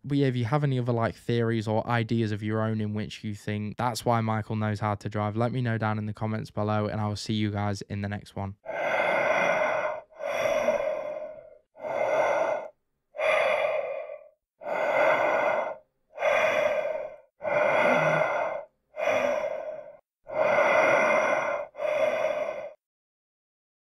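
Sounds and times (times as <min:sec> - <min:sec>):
slow heavy breathing: 0:08.6 - 0:22.8.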